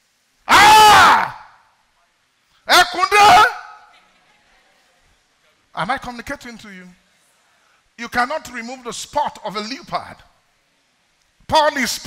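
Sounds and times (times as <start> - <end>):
man crying out: 0.5 - 1.6, 2.7 - 3.8.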